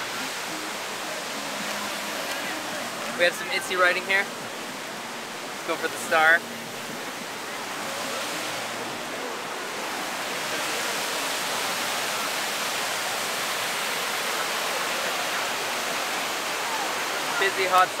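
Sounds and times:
river rapids rushing: 0.0 - 18.0.

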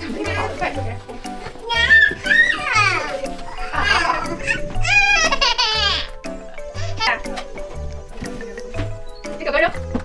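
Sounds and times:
background music with low beat: 0.0 - 10.0
toddler crying: 1.6 - 7.3.

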